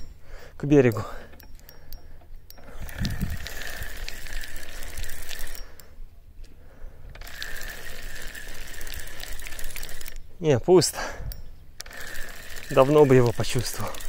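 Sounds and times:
fishing reel whirring: 0.9s - 5.9s, 7.1s - 10.3s, 11.8s - 14.0s.

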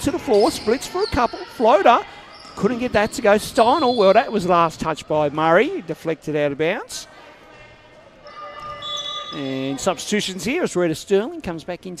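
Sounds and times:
sports hall background: 0.0s - 12.0s.

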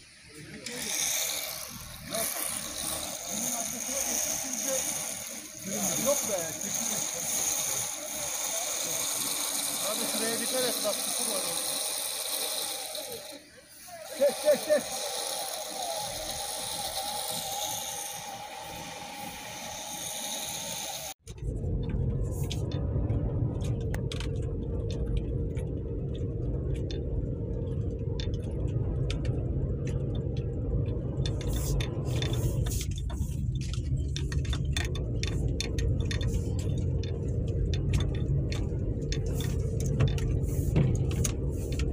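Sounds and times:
engine and tyre rumble: 15.5s - 41.9s.

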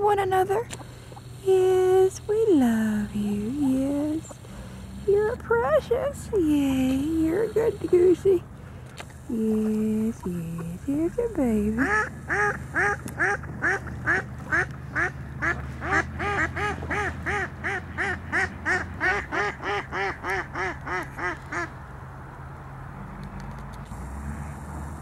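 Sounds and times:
low background rumble: 0.0s - 25.0s
goose honking: 10.3s - 21.7s.

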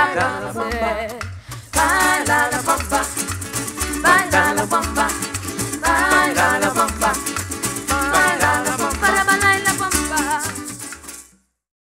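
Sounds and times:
voices singing: 0.0s - 10.7s
bass line: 0.0s - 11.1s
guitars strumming: 0.0s - 11.4s
maracas shaking: 0.0s - 11.4s.

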